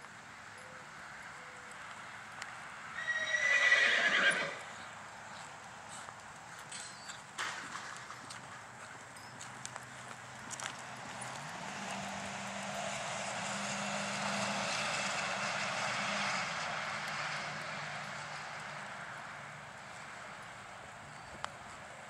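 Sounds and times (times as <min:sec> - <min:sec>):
hoofbeats of horse trotting on dirt: 0:01.1 - 0:22.0
horse neighing: 0:03.0 - 0:04.7.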